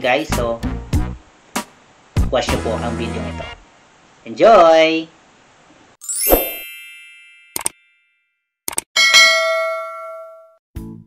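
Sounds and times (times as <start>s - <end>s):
bright bell-like chime: 6.0s - 8.3s.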